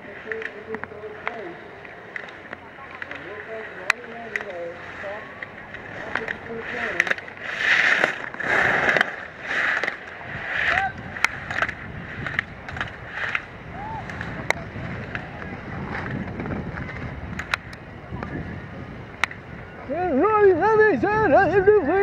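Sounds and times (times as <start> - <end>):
skis scraping snow: 2.2 - 17.5.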